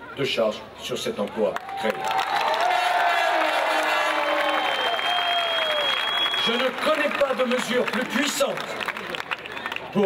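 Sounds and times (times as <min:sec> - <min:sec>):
crowd applauding and cheering: 0:01.5 - 0:10.0
high steady whistle: 0:04.4 - 0:06.6.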